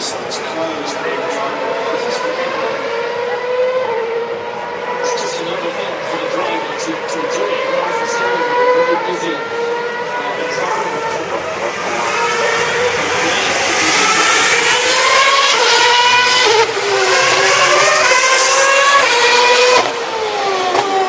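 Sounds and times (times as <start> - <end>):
racing car engines at full throttle: 0.0 - 21.0.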